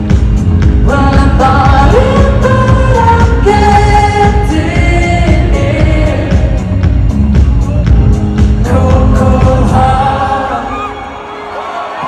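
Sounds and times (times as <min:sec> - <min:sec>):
loud live pop music: 0:00.0 - 0:12.0.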